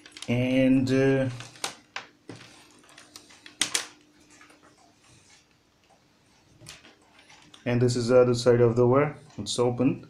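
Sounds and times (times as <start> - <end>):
light rustling of wires: 1.2 - 7.7
wires clicking on wooden desk: 1.3 - 4.6.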